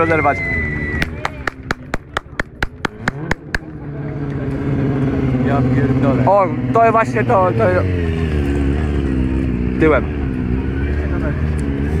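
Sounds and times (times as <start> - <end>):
hand clapping: 1.0 - 3.7
motorcycle engine running: 1.0 - 6.3.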